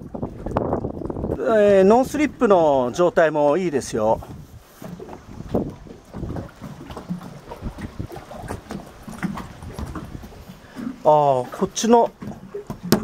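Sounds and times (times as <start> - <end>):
footsteps on boat deck: 0.0 - 13.0
wind on microphone: 0.0 - 13.0.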